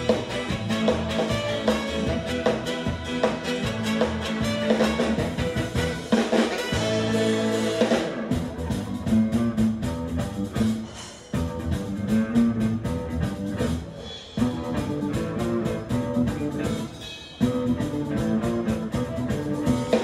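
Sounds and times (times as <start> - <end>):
bass guitar: 0.0 - 20.0
drum kit: 0.0 - 20.0
electric guitar riff: 0.0 - 20.0.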